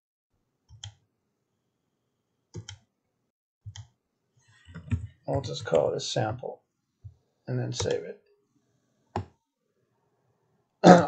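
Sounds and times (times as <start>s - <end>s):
computer mouse clicking: 0.7s - 1.0s, 2.6s - 2.9s, 3.7s - 4.0s, 4.6s - 5.8s.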